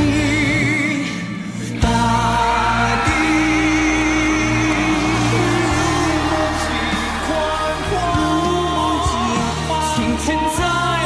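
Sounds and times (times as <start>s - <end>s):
band accompaniment: 0.0s - 11.0s
men singing pop ballad: 0.0s - 11.0s.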